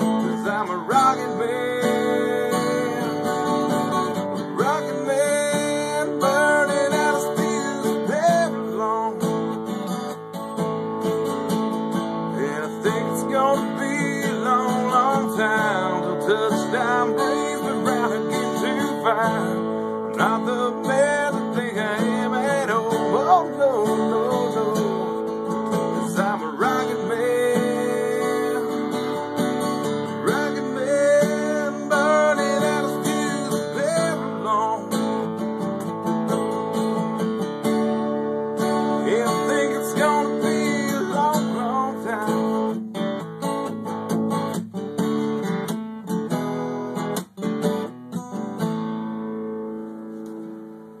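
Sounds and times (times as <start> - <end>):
strummed acoustic guitar: 0.0 - 51.0.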